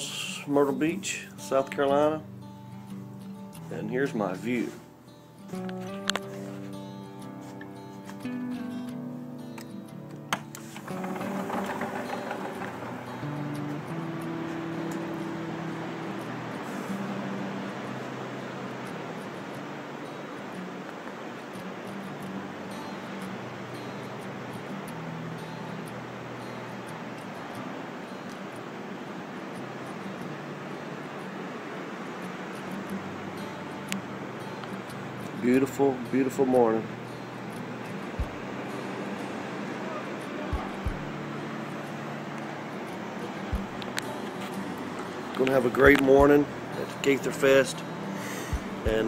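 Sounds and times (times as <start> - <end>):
faint music: 0.0 - 49.0
ocean surf rushing: 10.4 - 49.0.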